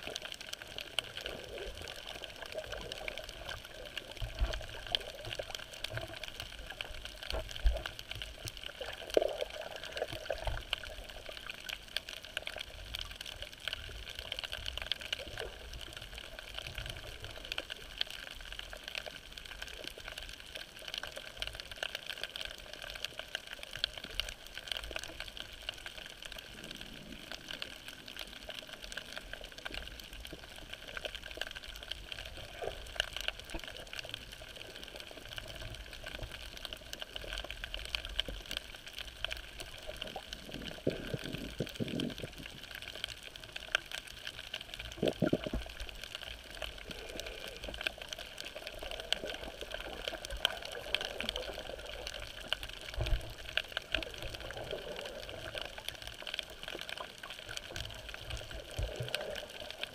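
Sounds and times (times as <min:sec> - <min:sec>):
faint scattered clicks: 0:00.0 - 0:59.9
muffled underwater water noise: 0:00.0 - 0:59.9.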